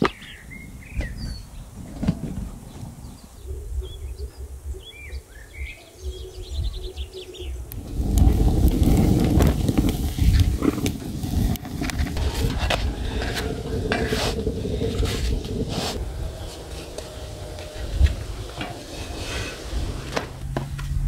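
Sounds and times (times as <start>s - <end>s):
small birds chirping: 0.0s - 19.8s
wood fire crackling and popping: 7.6s - 21.0s.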